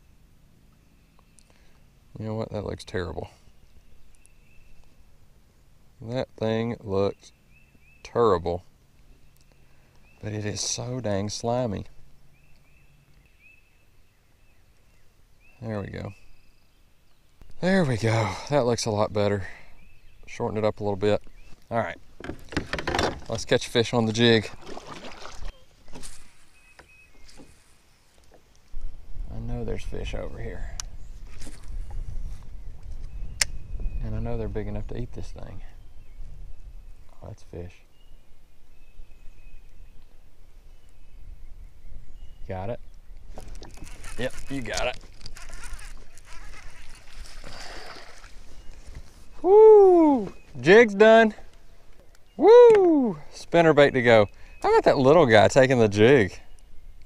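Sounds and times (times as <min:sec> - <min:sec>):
bird chirping: 0:00.0 - 0:02.2, 0:02.9 - 0:05.0, 0:06.5 - 0:18.0, 0:19.6 - 0:28.2, 0:28.8 - 0:57.0
soft water sounds: 0:21.2 - 0:29.2, 0:42.8 - 0:55.3
wind rumble: 0:28.8 - 0:37.2.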